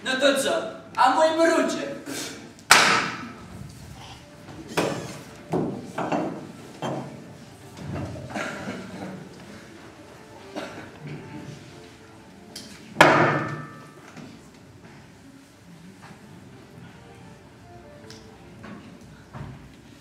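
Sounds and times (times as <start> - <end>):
loud sharp bang echoing: 2.7 - 3.4.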